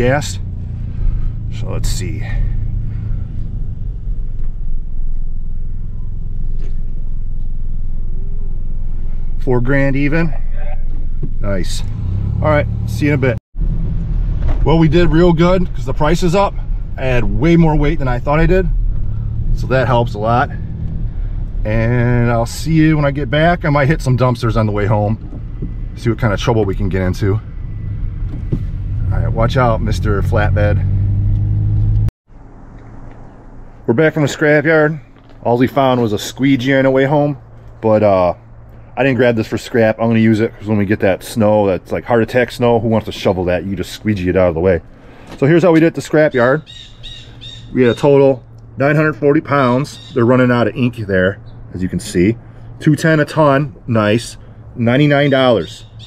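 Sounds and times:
truck engine idling: 0.0 - 9.6
truck engine drone inside cab: 0.0 - 10.2, 10.9 - 34.0
quiet outdoor background: 0.0 - 56.0.

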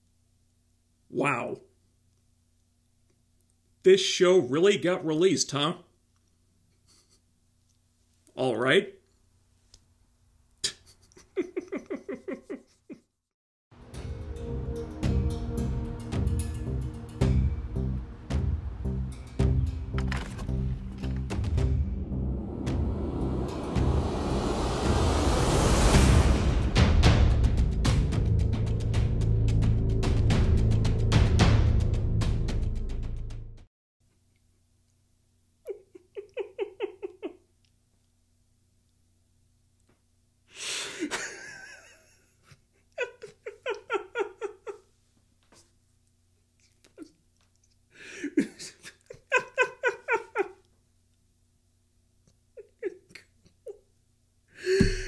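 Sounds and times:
man's stifled giggling: 6.8 - 7.2, 10.6 - 13.2, 35.7 - 37.5, 40.9 - 44.9, 48.0 - 50.7, 52.6 - 53.8, 54.6 - 55.0
man laughing hard: 10.6 - 13.1, 35.7 - 37.4, 40.9 - 44.9, 48.0 - 50.6, 52.6 - 53.2, 54.6 - 55.0
heavy low rumble: 16.7 - 28.4
rush of noise: 21.5 - 27.6.

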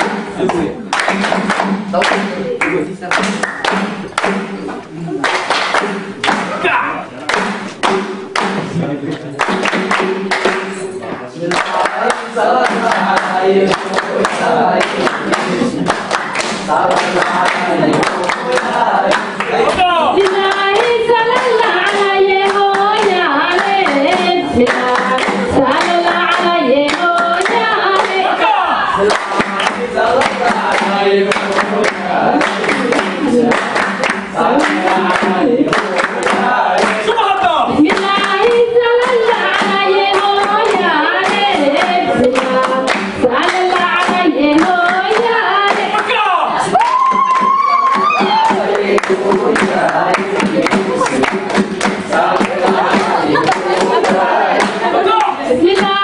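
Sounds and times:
rhythmic hand clapping: 0.0 - 56.0
voices singing folk song: 5.8 - 56.0.

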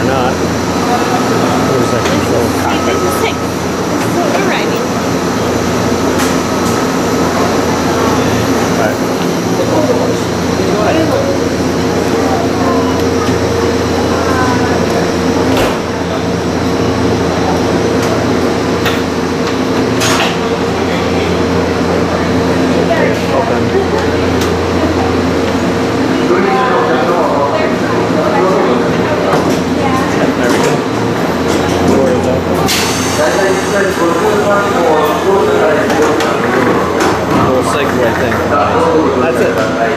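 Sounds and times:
train humming: 0.0 - 39.9.

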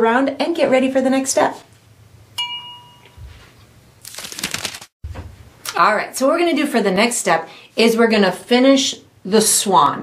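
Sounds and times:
glass mug clinking: 2.4 - 3.2.

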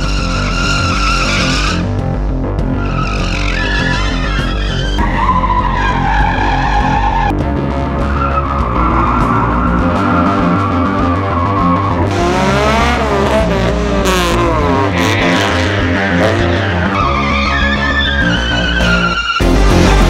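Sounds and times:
car tyres squealing: 0.0 - 2.0, 2.6 - 20.0
background music with steady beat: 0.0 - 20.0.

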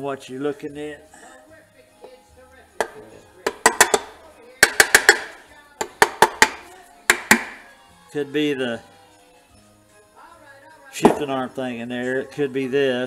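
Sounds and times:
plastic mallet tapping metal: 2.8 - 7.6.

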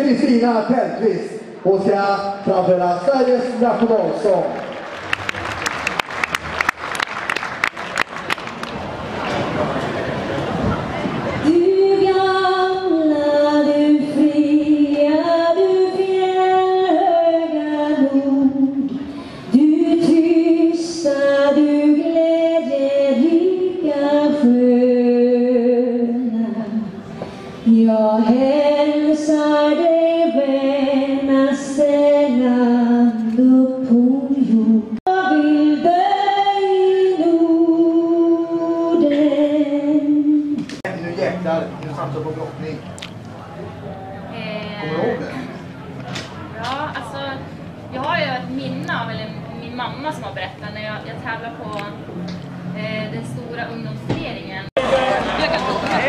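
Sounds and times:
woman singing into microphone: 11.4 - 27.0, 27.6 - 40.8
singer breathing: 18.9 - 19.6, 27.1 - 27.6.

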